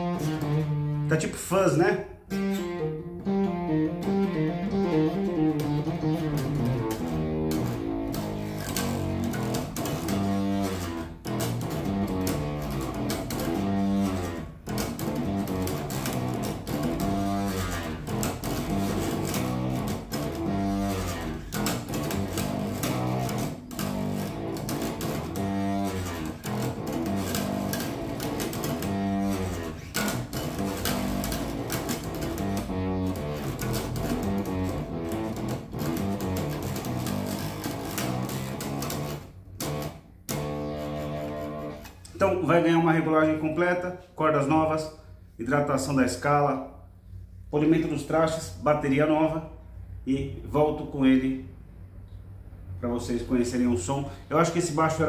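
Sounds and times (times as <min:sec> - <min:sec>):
distorted electric bass riff: 0:00.0 - 0:43.6.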